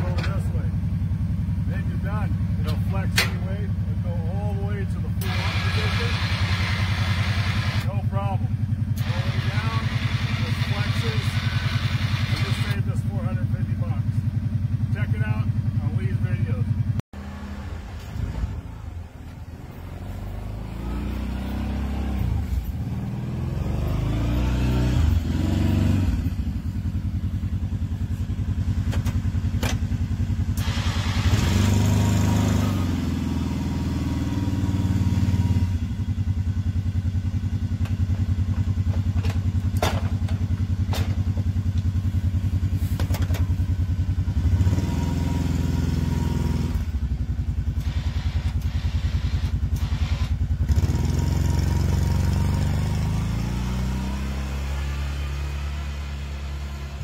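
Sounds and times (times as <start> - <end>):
atv engine revving: 0.0 - 19.0, 19.6 - 57.0
plow blade pushing snow: 4.4 - 8.4, 9.0 - 13.0, 30.5 - 35.6, 42.7 - 43.6, 47.8 - 57.0.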